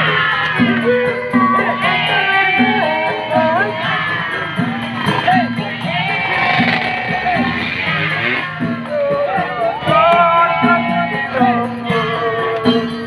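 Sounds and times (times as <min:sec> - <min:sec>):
crowd shouting: 0:00.0 - 0:11.9
person singing: 0:00.0 - 0:13.0
wavering melody: 0:00.0 - 0:13.0.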